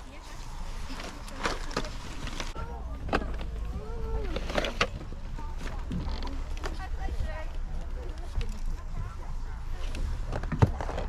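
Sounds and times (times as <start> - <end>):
distant chatter: 0.0 - 11.0.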